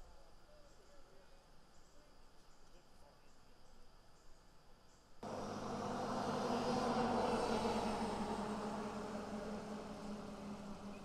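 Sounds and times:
engine passing by: 0:05.2 - 0:11.0.

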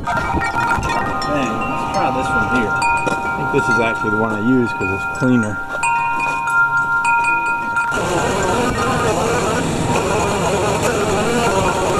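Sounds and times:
wind chimes ringing: 0:00.0 - 0:09.3.

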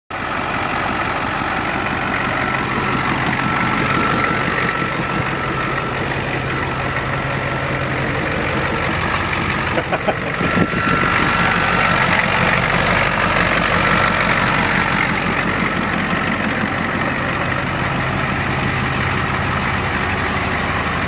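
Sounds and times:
bus engine idling: 0:00.1 - 0:21.0.

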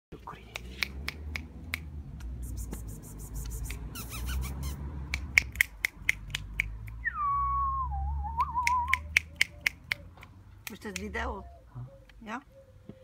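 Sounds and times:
fingers snapping: 0:00.5 - 0:04.0, 0:05.0 - 0:07.0, 0:08.4 - 0:11.1.

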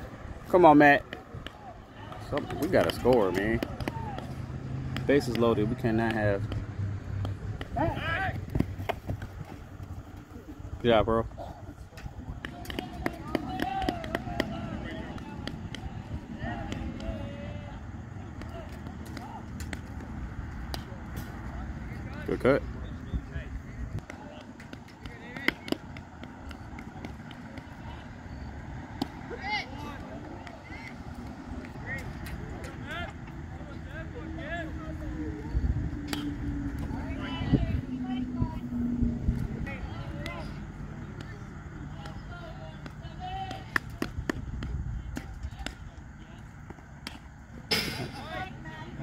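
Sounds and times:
players and spectators calling out: 0:00.3 - 0:49.0
low steady rumble: 0:30.5 - 0:43.2.

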